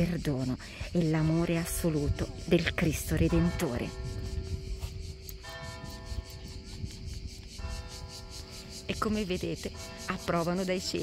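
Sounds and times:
church bells ringing: 1.6s - 6.9s, 7.6s - 11.0s.

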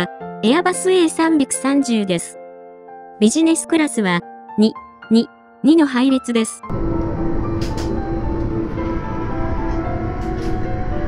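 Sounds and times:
background music: 0.0s - 11.0s
airliner cabin rumble: 6.7s - 11.0s.

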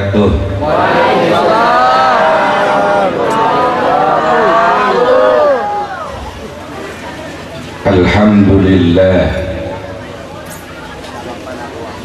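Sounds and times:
congregation chanting: 0.6s - 5.6s.

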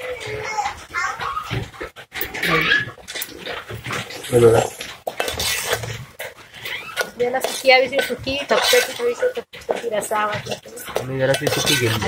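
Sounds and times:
animal whining cries: 2.4s - 3.0s, 6.6s - 7.2s.

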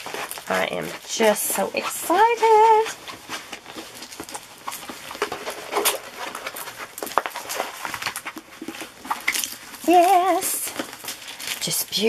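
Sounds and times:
canvas and paper rustling: 0.0s - 12.0s.

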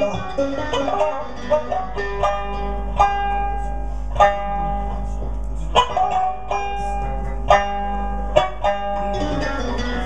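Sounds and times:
plucked string instrument music: 0.0s - 10.0s.

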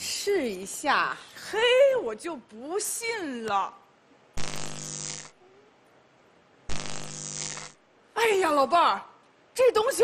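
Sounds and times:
electric buzz sound effect: 4.4s - 5.4s, 6.7s - 7.8s.

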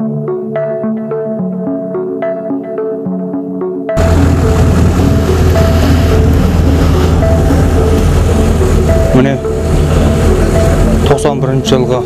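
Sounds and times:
soft synth and mallet music: 0.0s - 12.0s
heavy low rumble: 4.0s - 11.2s.

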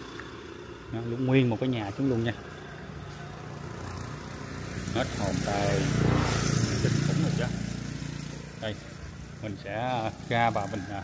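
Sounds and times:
engine running: 0.0s - 11.0s.

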